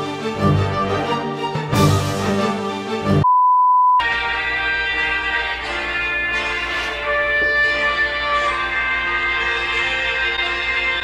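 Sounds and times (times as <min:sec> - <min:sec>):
background music: 0:00.0 - 0:03.2, 0:04.0 - 0:11.0
high beep: 0:03.2 - 0:04.0.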